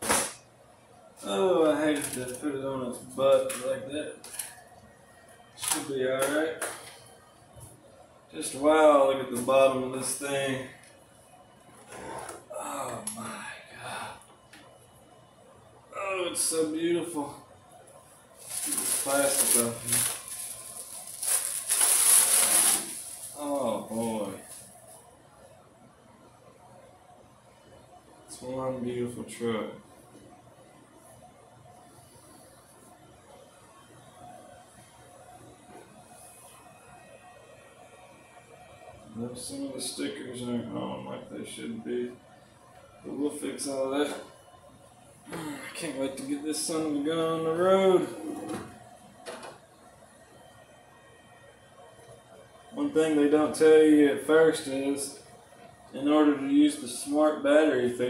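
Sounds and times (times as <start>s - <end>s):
plastic wrap crinkling: 18.4s - 24.9s.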